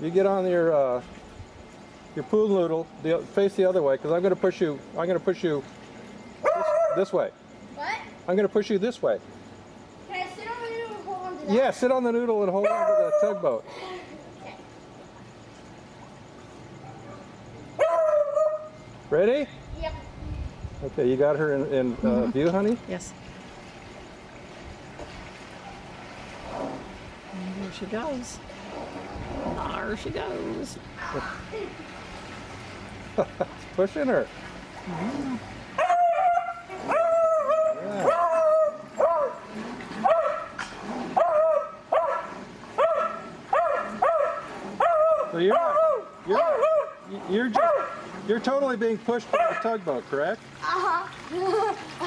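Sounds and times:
dog barking: 0:06.4 - 0:07.1, 0:12.6 - 0:13.4, 0:16.8 - 0:18.7, 0:35.8 - 0:39.4, 0:40.0 - 0:40.6, 0:41.2 - 0:48.1, 0:49.3 - 0:49.8.

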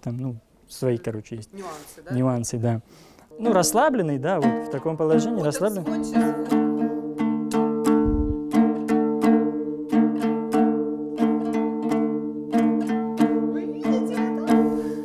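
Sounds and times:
plucked lute strummed: 0:03.3 - 0:15.0.

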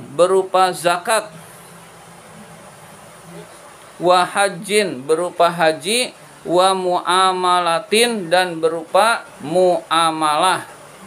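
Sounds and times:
faint hiss: 0:00.0 - 0:11.0
steady low hum: 0:00.0 - 0:11.0.

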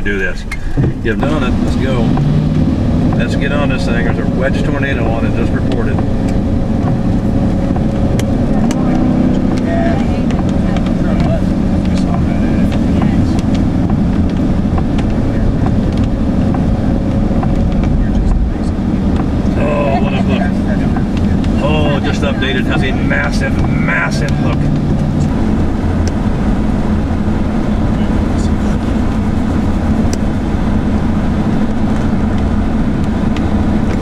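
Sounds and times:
tyres on wet pavement: 0:00.0 - 0:34.0
vehicle engine and road noise: 0:00.0 - 0:34.0.

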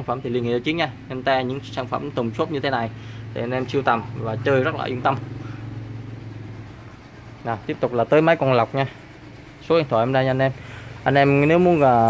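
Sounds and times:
steady low hum: 0:00.0 - 0:12.0
vehicle engine drone: 0:00.0 - 0:12.0.

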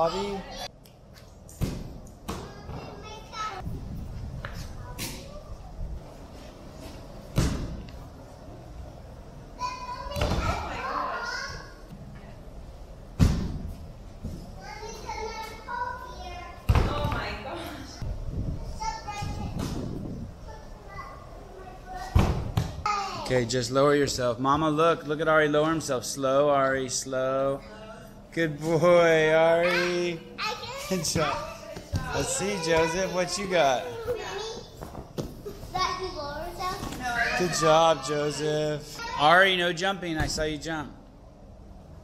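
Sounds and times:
small children's voices: 0:02.3 - 0:03.7, 0:04.6 - 0:05.9, 0:09.5 - 0:11.9, 0:14.5 - 0:16.8, 0:17.8 - 0:19.8, 0:20.4 - 0:23.3, 0:29.6 - 0:39.4.

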